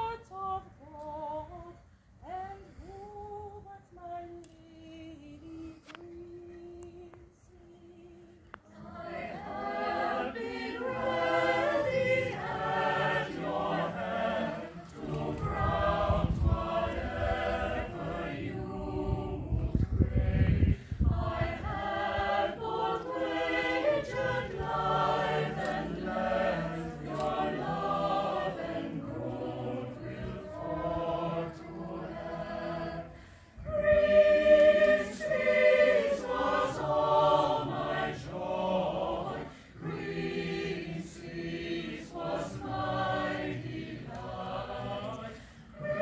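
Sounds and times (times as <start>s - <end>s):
mixed choir singing a cappella: 0.0s - 5.3s, 7.7s - 46.0s.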